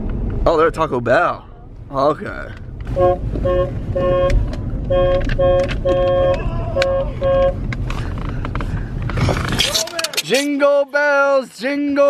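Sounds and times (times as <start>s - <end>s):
car engine rumble: 0.0s - 10.5s
car horn short toots: 2.9s - 7.6s.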